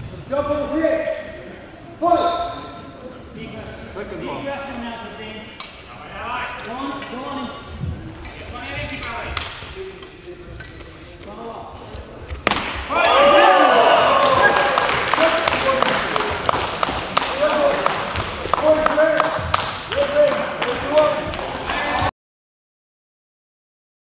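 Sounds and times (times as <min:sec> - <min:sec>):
voices in sports hall: 0:00.0 - 0:22.1.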